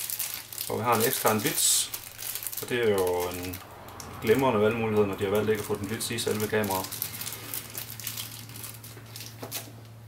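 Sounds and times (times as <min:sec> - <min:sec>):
plastic bag crinkling: 0:00.0 - 0:10.0
steady low hum: 0:01.8 - 0:10.0.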